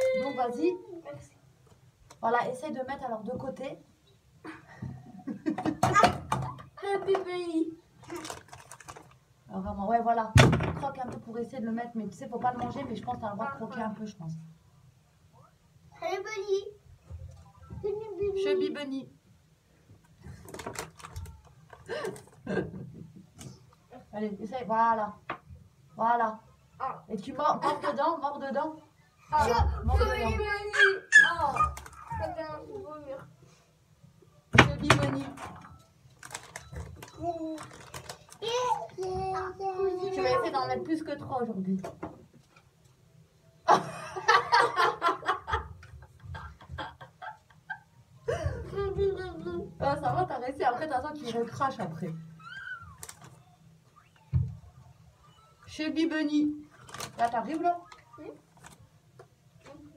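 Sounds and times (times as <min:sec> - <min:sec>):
woman laughing: 0:43.7 - 0:48.8.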